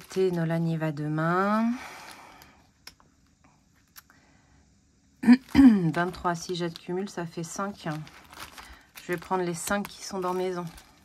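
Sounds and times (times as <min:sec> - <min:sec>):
plastic pouches rustling: 0:00.0 - 0:02.9, 0:05.2 - 0:11.0.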